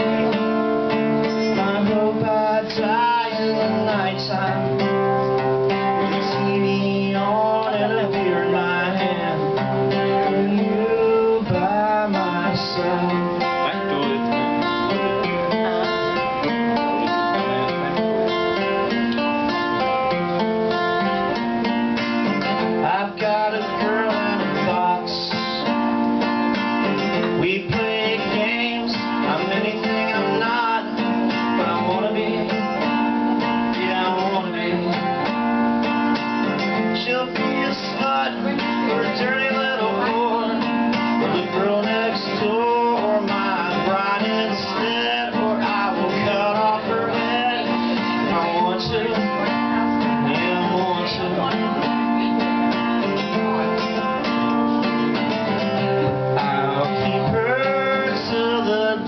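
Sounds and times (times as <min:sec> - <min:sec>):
acoustic guitar strumming: 0:00.0 - 0:59.0.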